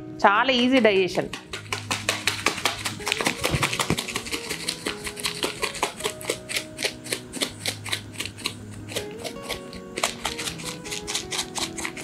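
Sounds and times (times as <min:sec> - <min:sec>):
background music: 0:00.0 - 0:12.0
salt shaker rattling: 0:00.8 - 0:12.0.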